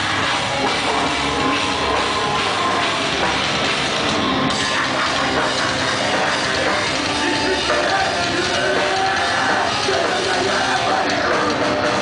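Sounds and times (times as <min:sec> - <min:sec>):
metalcore band playing live: 0:00.0 - 0:12.0.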